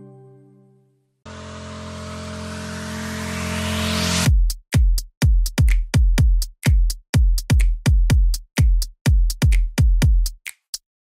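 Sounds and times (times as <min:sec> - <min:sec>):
held synth chord: 0:00.0 - 0:04.3
rising noise sweep: 0:01.3 - 0:04.3.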